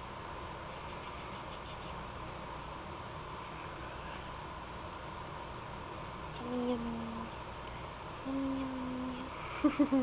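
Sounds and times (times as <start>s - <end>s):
steady background hiss: 0.0s - 10.0s
person humming low note: 6.4s - 7.3s, 8.2s - 9.3s.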